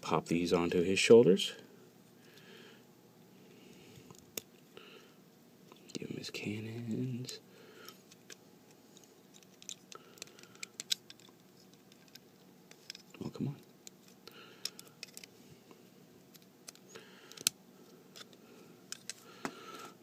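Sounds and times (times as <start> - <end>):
plastic toy parts clicking and scraping: 7.8 - 15.3, 16.3 - 19.8.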